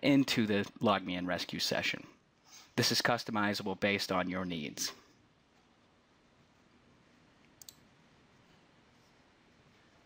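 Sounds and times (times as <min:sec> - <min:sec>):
mouse clicks: 0:07.5 - 0:07.9.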